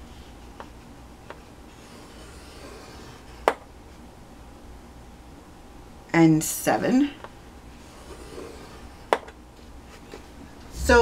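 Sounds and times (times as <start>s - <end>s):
stylus scraping cardstock: 1.3s - 3.6s, 7.8s - 9.1s.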